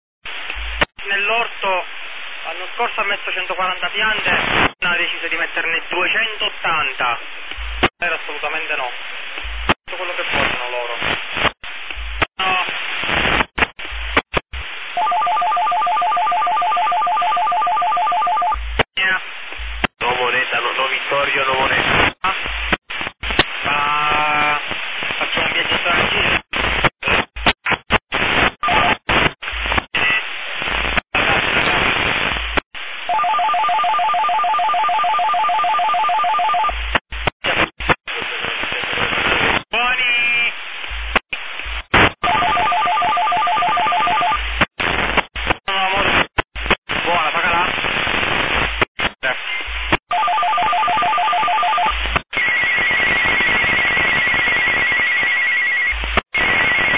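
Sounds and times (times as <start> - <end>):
walkie-talkie voices: 19.0 - 19.2, 19.9 - 32.4, 36.4 - 40.6, 41.3 - 52.6.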